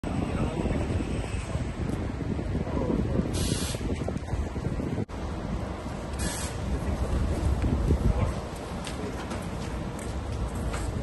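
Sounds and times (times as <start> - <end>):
air brake hiss: 3.3 - 3.9, 6.2 - 6.6
bus engine idling: 5.0 - 11.0.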